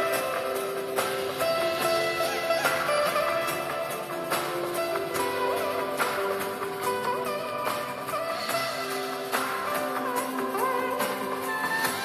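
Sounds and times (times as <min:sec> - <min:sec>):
plucked electric veena melody: 0:00.0 - 0:12.0.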